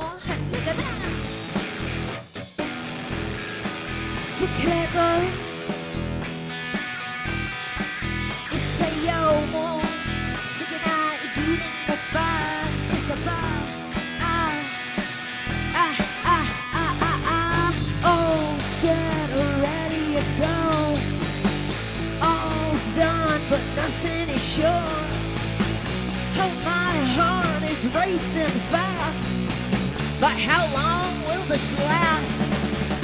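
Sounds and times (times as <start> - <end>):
bass guitar: 0.0 - 33.0
drum kit: 0.0 - 33.0
electric guitar lead melody: 0.0 - 33.0.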